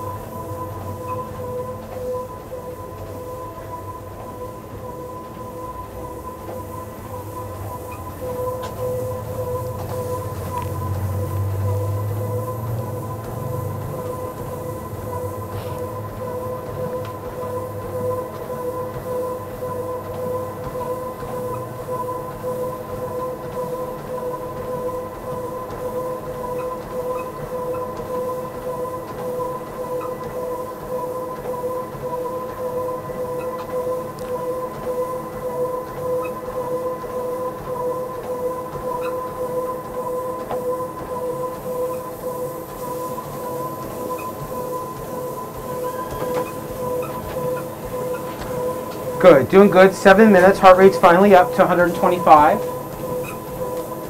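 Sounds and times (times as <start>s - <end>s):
running footfalls on treadmill belt: 0.0s - 54.0s
treadmill motor whine: 0.0s - 54.0s.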